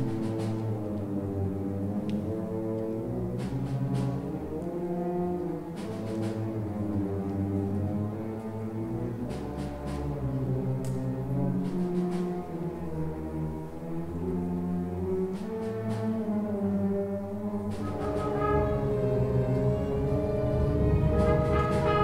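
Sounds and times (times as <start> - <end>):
orchestra playing held chords: 0.0 - 22.0.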